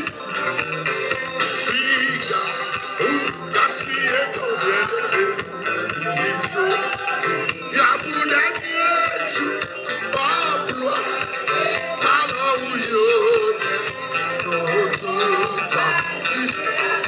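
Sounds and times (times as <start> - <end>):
congas: 0.0 - 17.0
electric guitar: 0.0 - 17.0
keyboard: 0.0 - 17.0
man singing with vibrato: 0.0 - 17.0.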